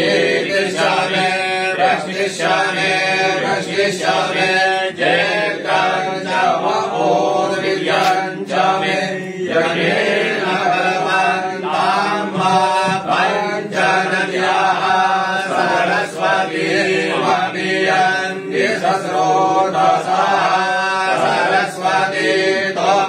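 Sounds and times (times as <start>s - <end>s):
man chanting a mantra: 0.0s - 23.0s.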